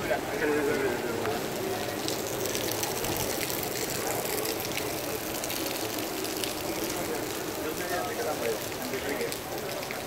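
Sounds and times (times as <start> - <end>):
rushing water: 0.0 - 10.0.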